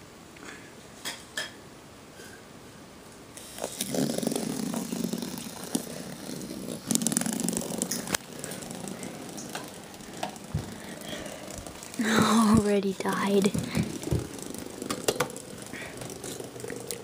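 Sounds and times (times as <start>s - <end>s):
toy car motors buzzing: 3.4s - 17.0s.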